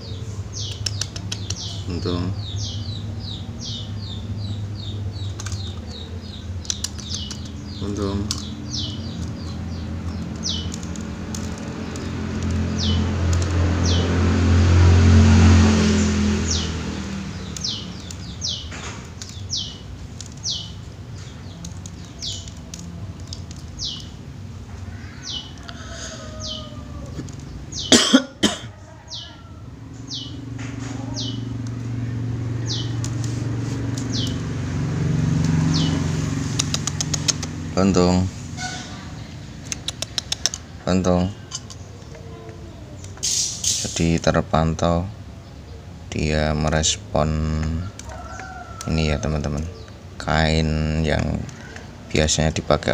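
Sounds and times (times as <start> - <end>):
small bird chirping: 0.0 - 15.0, 15.6 - 28.0, 28.8 - 52.9
low rumble of passing traffic: 0.0 - 52.9.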